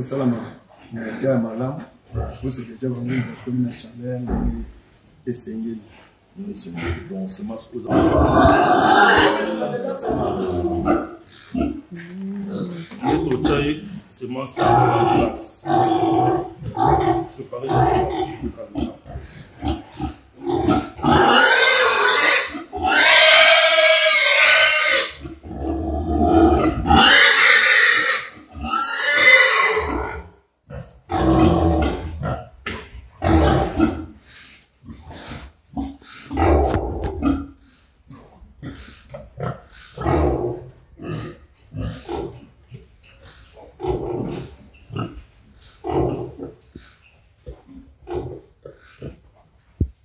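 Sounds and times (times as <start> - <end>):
pig grunts: 0.0 - 4.7, 5.9 - 49.2
pig screaming and squealing: 7.8 - 11.9, 12.6 - 49.3.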